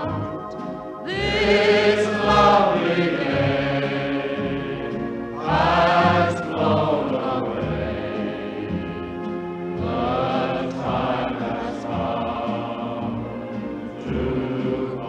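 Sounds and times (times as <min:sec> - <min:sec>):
choir singing held notes: 0:00.0 - 0:15.0
musical accompaniment: 0:00.0 - 0:15.0.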